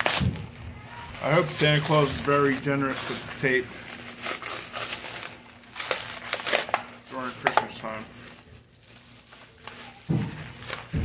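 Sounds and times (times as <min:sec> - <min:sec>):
packaging crinkling and rustling: 0:00.0 - 0:11.0.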